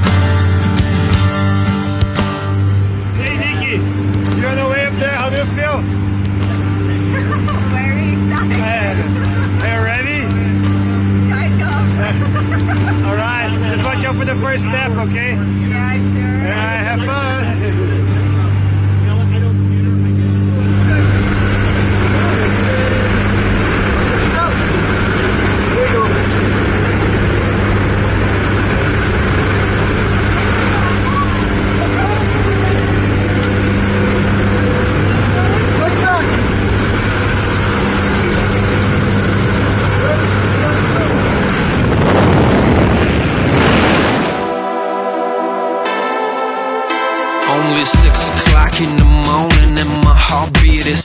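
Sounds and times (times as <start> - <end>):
plane engines and propellers drone: 0.0 - 48.4
wind rushing through open door: 40.6 - 44.5.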